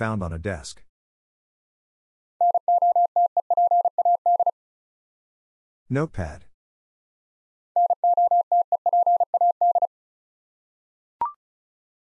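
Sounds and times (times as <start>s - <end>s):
morse code beeps: 2.4s - 4.5s, 7.8s - 9.9s.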